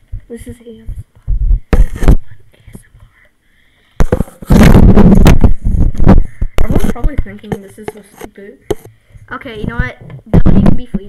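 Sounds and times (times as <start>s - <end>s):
plastic ball rubbing on headphones: 0.8s - 3.2s, 4.0s - 11.0s
distorted rumbling and scraping: 4.0s - 11.0s.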